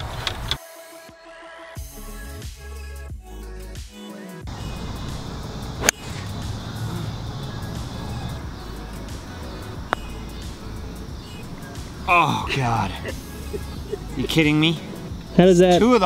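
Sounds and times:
background music: 0.1 - 16.0
golf iron striking ball: 5.0 - 12.1
putter tapping ball: 9.8 - 10.6.

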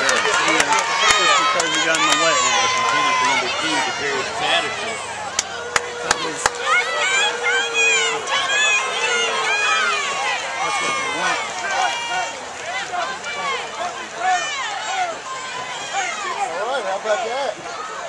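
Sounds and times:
crowd shouting and cheering: 0.0 - 18.0.

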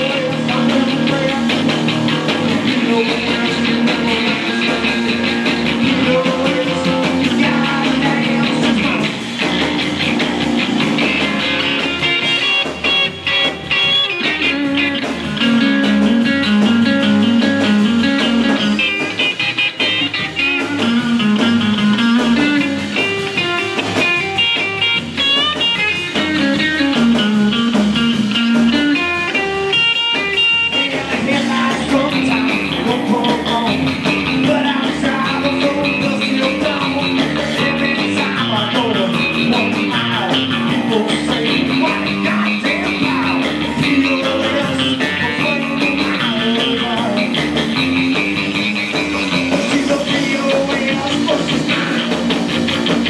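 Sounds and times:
drums: 0.0 - 53.0
electric guitar lead lines: 0.0 - 53.0
upright bass: 0.0 - 53.0.

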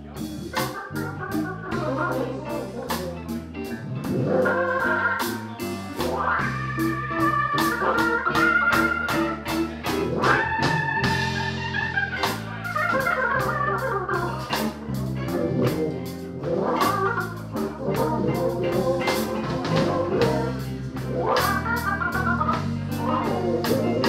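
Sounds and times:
electric bass: 0.0 - 24.0
organ playing blues: 0.0 - 24.0
steady drum beat: 0.0 - 24.0.

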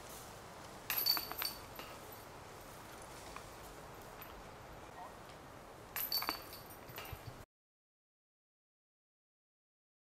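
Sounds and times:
metal chains jangling: 0.9 - 2.3, 6.0 - 7.4.

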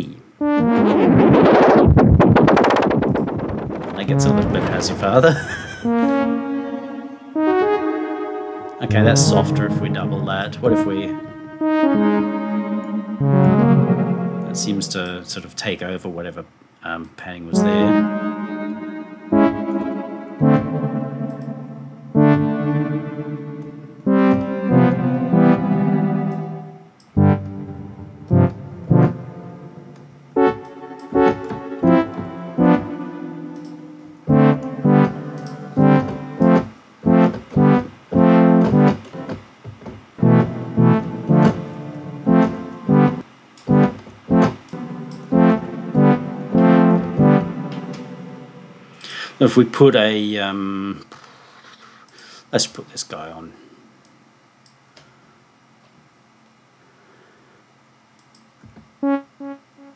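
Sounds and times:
synthesizer notes with echoes: 0.0 - 15.3, 17.5 - 39.4, 40.2 - 49.1, 59.0 - 59.9.

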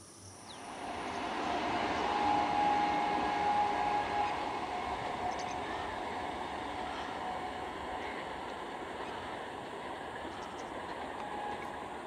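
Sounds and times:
faint high whine: 0.0 - 12.0
train wheels rumbling on track: 0.4 - 12.0.

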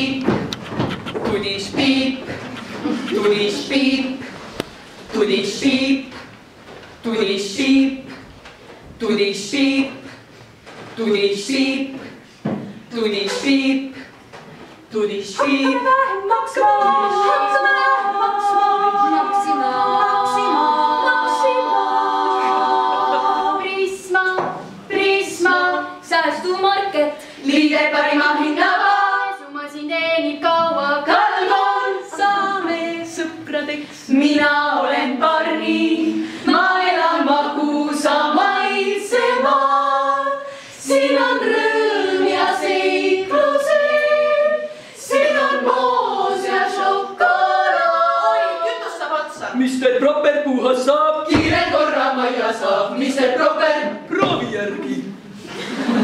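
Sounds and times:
women singing a cappella harmony: 1.3 - 4.5, 14.9 - 49.5, 51.0 - 54.1.

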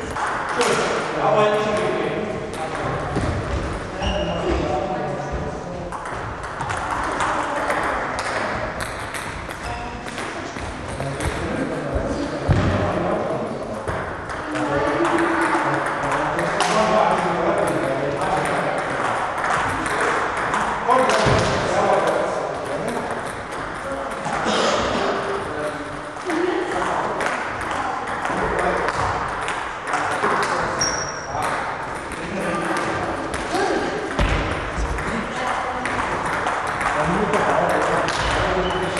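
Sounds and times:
table tennis balls clicking: 0.0 - 0.9, 5.9 - 11.4, 13.8 - 24.4, 25.6 - 38.9.

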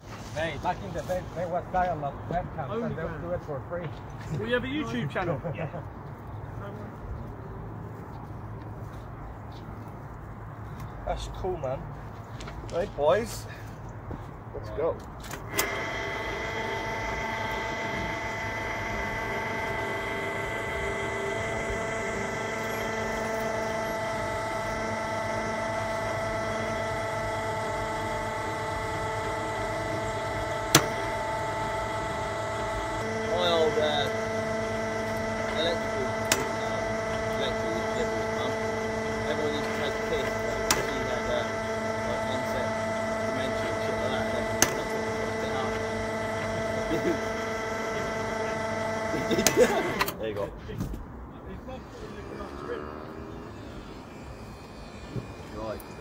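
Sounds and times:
winch whining: 15.3 - 50.2, 51.6 - 56.0
low hum: 51.4 - 56.0.

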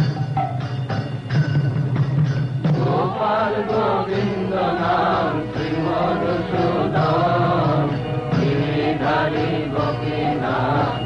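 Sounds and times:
musical accompaniment: 0.0 - 11.0
voices chanting a hymn: 2.7 - 11.0.

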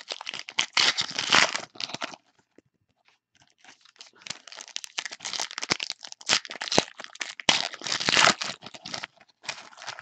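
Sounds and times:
foil wrapper crinkling: 3.5 - 10.0.

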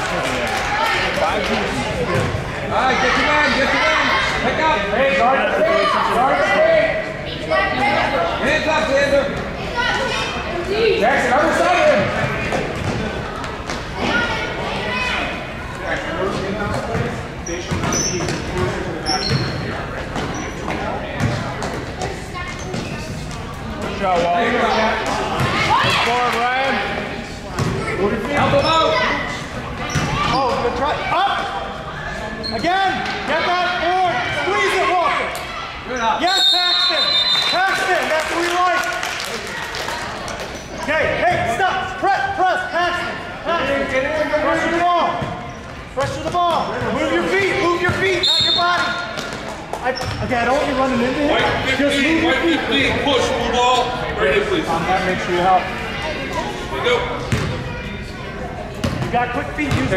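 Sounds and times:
basketball bouncing on gym floor: 57.3 - 57.6, 58.8 - 59.9.

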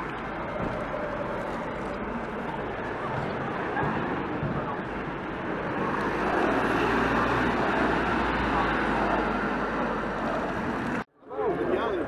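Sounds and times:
vehicle engine rumble: 0.0 - 11.1
street traffic noise: 0.0 - 12.0
voices: 0.0 - 12.0.

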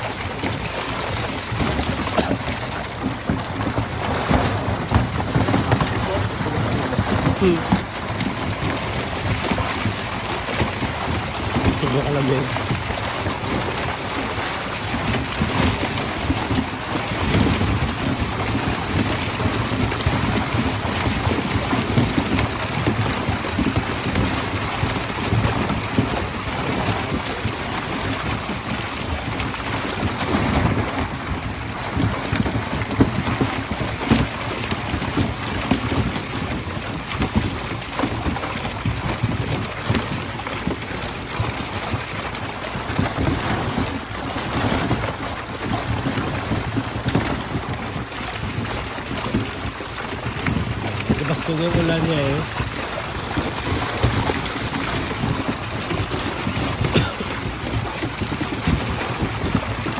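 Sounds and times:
fish thrashing and splashing in water: 0.0 - 59.9.

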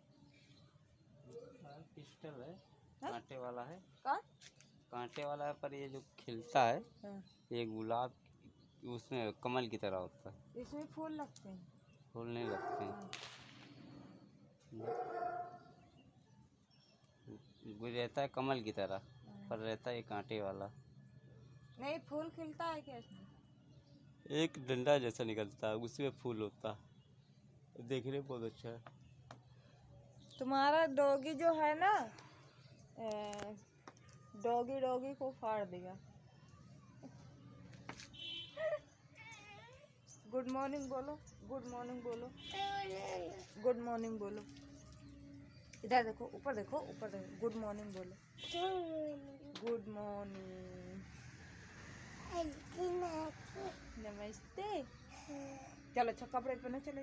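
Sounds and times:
dog calling: 12.4 - 13.1, 14.8 - 15.6.

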